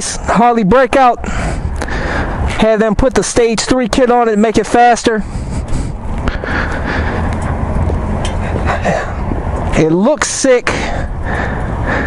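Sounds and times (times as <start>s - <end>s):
steady low rumble: 0.0s - 12.0s.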